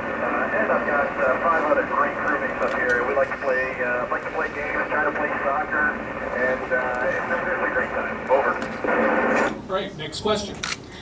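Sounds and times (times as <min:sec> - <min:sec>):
voice over radio loudspeaker: 0:00.0 - 0:10.5.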